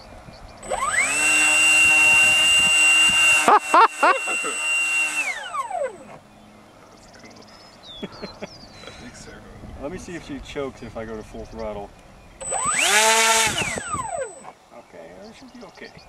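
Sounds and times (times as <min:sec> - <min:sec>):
electric motor and propeller whine: 0:00.0 - 0:08.8, 0:11.9 - 0:14.6.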